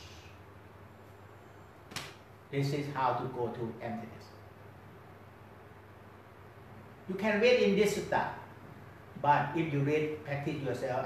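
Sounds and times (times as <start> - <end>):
faint low hum: 0.0 - 11.0
sharp click: 1.9 - 2.2.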